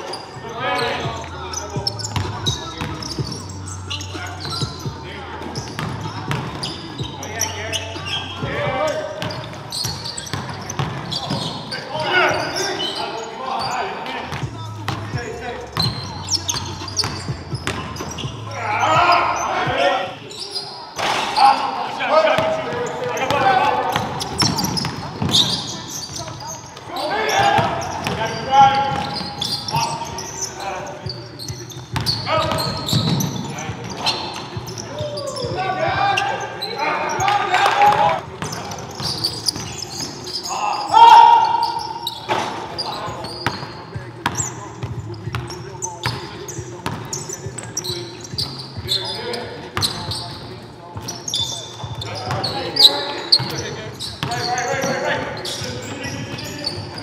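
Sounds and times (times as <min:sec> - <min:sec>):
players shouting: 0:06.0 - 0:43.3.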